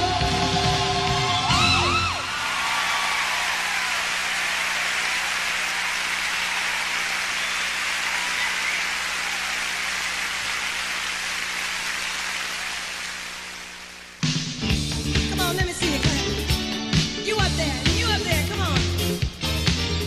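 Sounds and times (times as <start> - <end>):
audience applauding: 1.1 - 14.2.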